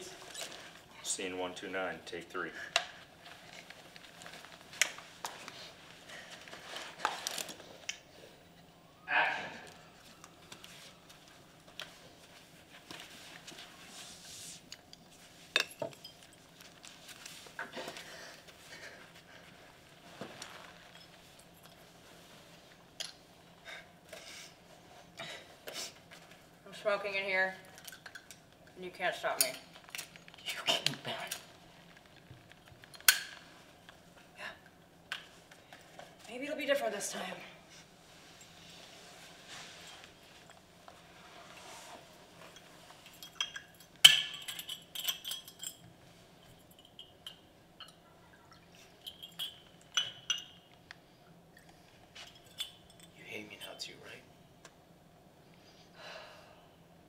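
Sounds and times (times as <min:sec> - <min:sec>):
light clicks and clinks: 0:20.6 - 0:21.9, 0:42.4 - 0:50.9, 0:51.6 - 0:54.0
glass bottle clinking against glass: 0:46.7 - 0:50.7.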